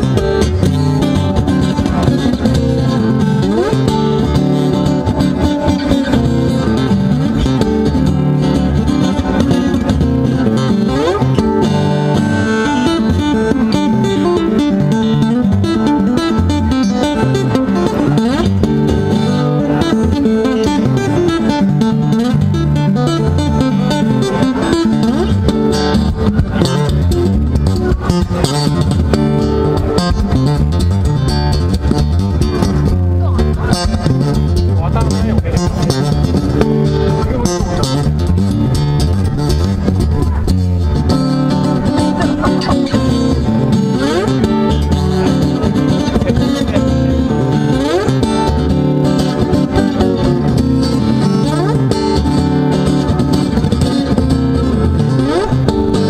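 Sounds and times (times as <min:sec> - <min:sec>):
fingerstyle acoustic guitar: 0:00.0 - 0:56.0.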